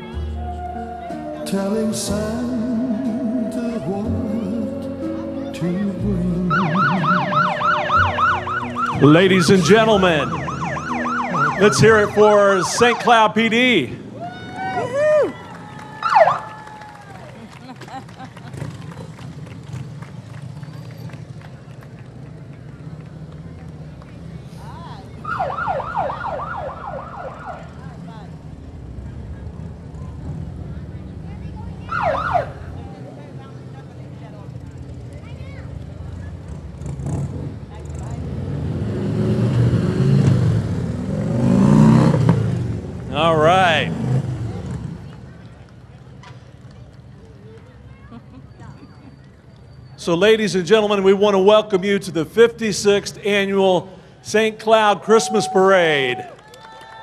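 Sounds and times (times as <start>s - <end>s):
motorcycle engines rumbling: 0.0s - 56.3s
police siren yelps and warble: 6.4s - 13.4s, 14.2s - 17.1s, 25.2s - 27.8s, 31.8s - 32.7s.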